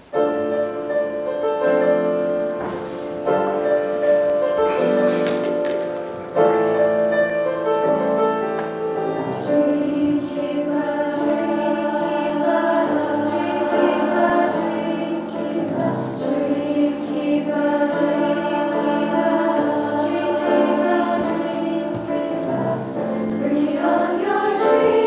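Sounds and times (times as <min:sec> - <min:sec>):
choir singing in parts: 0:08.9 - 0:25.0.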